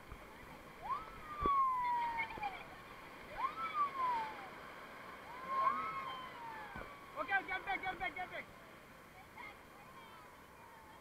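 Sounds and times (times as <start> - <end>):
whitewater rushing: 0.0 - 11.0.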